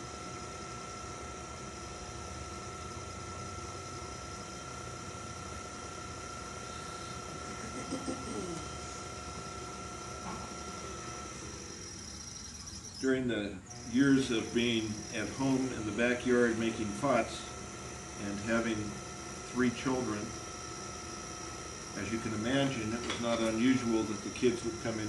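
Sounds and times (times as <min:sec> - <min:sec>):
potter's wheel motor whine: 0:00.0 - 0:25.0.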